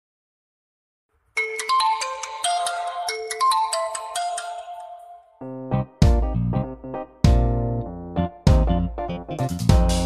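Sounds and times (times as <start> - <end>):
phone ringtone melody: 1.4 - 5.5.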